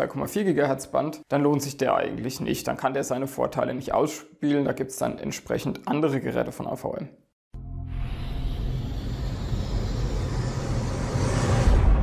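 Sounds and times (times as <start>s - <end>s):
low steady drone: 8.0s - 12.0s
rumbling whoosh: 8.1s - 12.0s.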